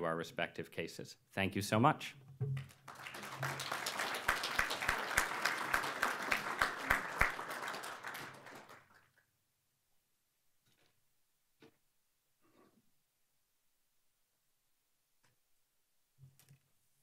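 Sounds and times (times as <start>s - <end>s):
audience applauding: 2.7s - 9.2s.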